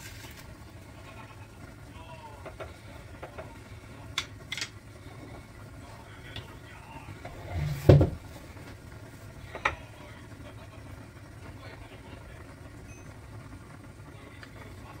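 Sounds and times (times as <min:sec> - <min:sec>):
low steady hum: 0:00.0 - 0:15.0
heavy thump: 0:07.7 - 0:08.2.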